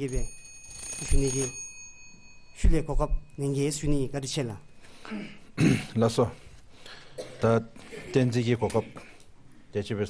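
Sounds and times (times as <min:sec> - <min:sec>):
man speaking: 0:01.1 - 0:01.5, 0:07.4 - 0:09.1.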